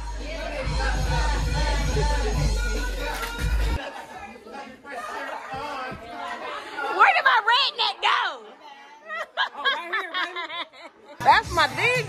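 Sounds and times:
party music with heavy bass beat: 0.0s - 3.8s, 11.2s - 12.0s
people chattering: 0.0s - 12.0s.

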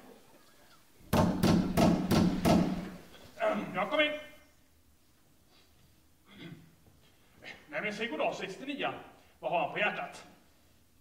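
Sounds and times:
loud knocks on a door: 1.1s - 2.8s.

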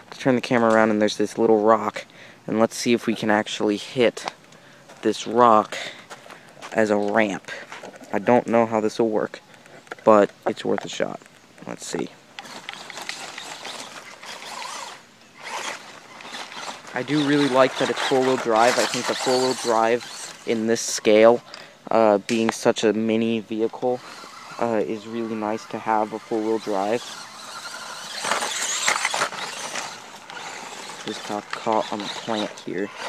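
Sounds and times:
electric toy truck motor buzzing: 12.4s - 21.6s, 23.6s - 33.0s.

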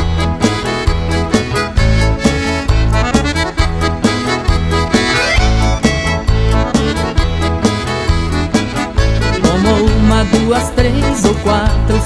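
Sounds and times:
accordion melody: 0.0s - 12.0s
bass: 0.0s - 12.0s
steady beat: 0.0s - 12.0s.

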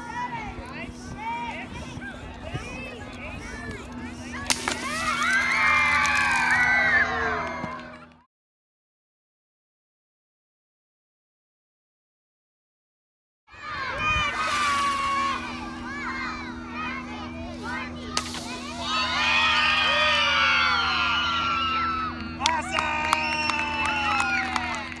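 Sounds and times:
children shouting and cheering: 0.0s - 8.2s, 13.5s - 25.0s
steady low hum: 0.0s - 8.2s, 13.6s - 25.0s.

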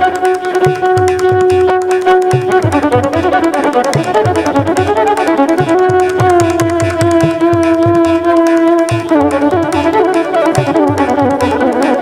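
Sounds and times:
violin playing: 0.0s - 12.0s.

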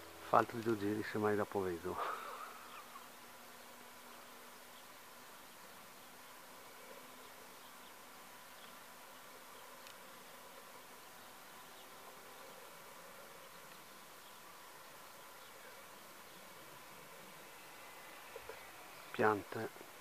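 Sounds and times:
distant model glider motor buzzing: 0.0s - 20.0s.

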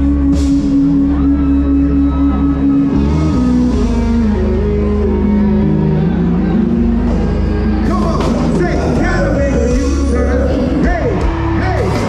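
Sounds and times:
guitar: 0.0s - 12.0s
live band playing: 0.0s - 12.0s.

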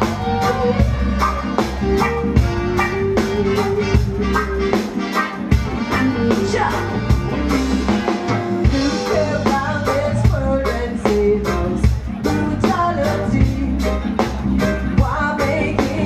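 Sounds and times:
reggae band playing: 0.0s - 16.0s.

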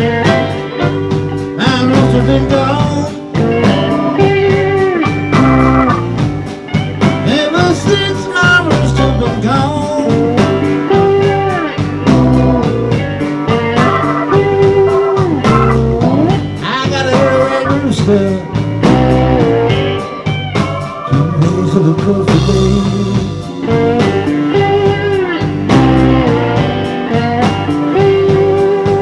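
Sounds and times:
electric guitar bending notes: 0.0s - 29.0s
live blues band playing: 0.0s - 29.0s.

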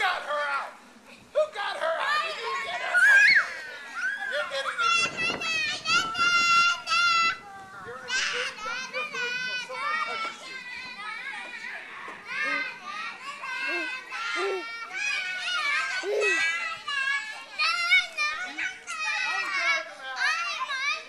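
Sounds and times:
children shrieking and shouting: 1.5s - 21.0s.

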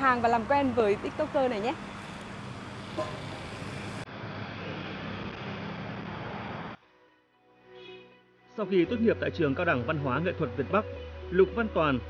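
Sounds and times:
traffic noise: 0.0s - 6.8s.

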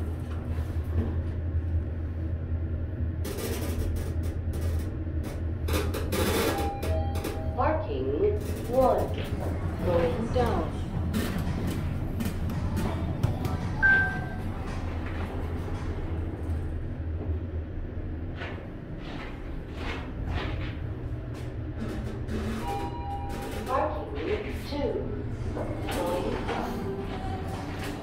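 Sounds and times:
steady low hum: 0.0s - 28.0s
background music: 9.6s - 16.5s
two-note tone: 13.8s - 14.4s
indistinct voices: 23.4s - 28.0s.

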